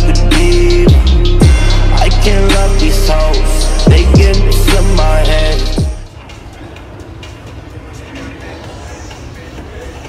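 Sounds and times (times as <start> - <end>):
gym background rumble and hiss: 6.1 - 10.0.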